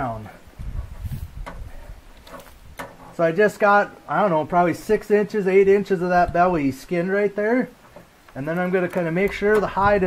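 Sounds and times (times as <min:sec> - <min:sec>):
gloved hands rubbing pelt: 0:00.6 - 0:02.8.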